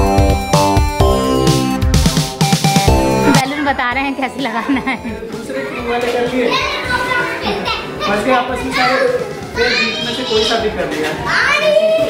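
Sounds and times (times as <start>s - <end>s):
background music: 0.0s - 12.0s
children playing and calling out: 4.5s - 12.0s.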